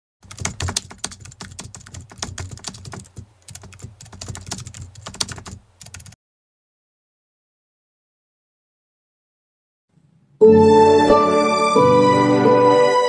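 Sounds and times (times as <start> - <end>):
rapid irregular clicking: 0.2 - 6.2.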